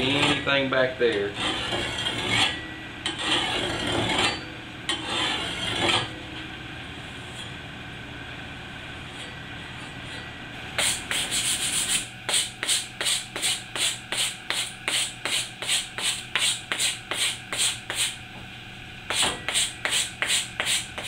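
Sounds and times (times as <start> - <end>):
file rasping on steel: 1.3 - 6.1, 10.8 - 18.2, 19.1 - 21.0.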